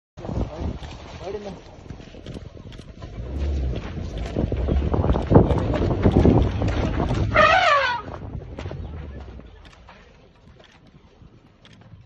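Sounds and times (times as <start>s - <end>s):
wind on microphone: 0.2s - 12.0s
vehicle engine running hard: 3.0s - 7.7s.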